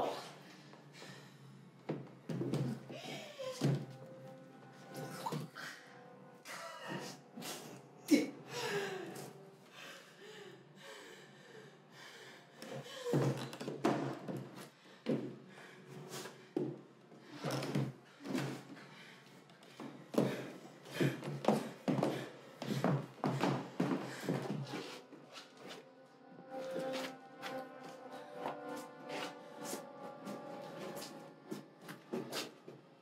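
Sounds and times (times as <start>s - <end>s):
film music: 0.6s - 13.0s, 18.7s - 33.0s
footsteps on wooden staircase: 12.6s - 15.4s, 19.6s - 25.8s.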